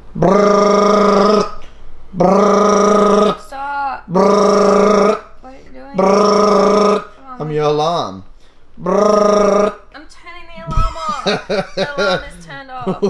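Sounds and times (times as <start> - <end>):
man imitating alarm beep: 5.9 - 7.2
man laughing or groaning: 10.7 - 13.0.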